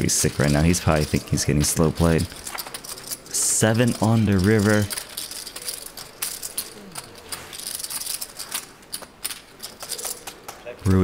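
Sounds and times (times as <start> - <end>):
poker chips clicking and rattling: 0.0 - 11.0.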